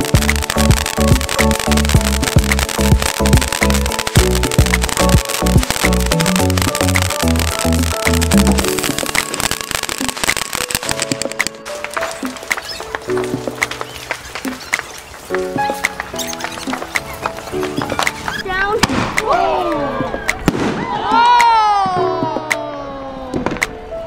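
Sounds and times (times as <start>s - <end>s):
background music with chords: 0.0s - 14.6s, 15.2s - 18.3s
fireworks crackling and popping: 0.0s - 22.7s.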